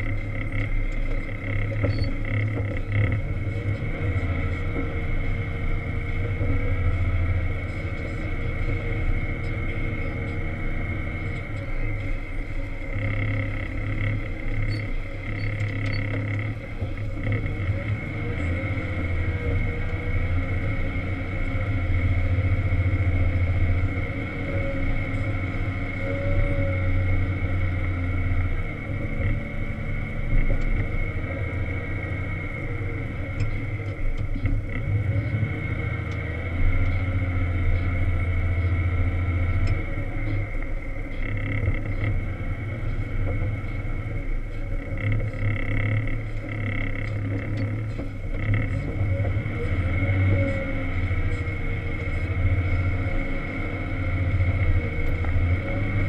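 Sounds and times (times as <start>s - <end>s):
diesel engine droning: 0.0s - 56.0s
high-pitched whine: 0.0s - 56.0s.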